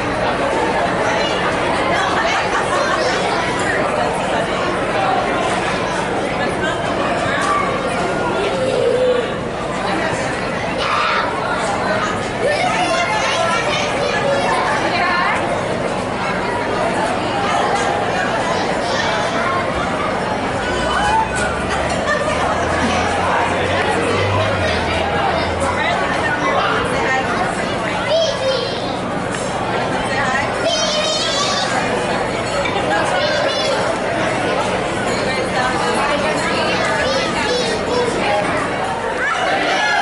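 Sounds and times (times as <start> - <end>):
crowd murmur: 0.0 - 40.0
spectators chattering: 0.0 - 40.0.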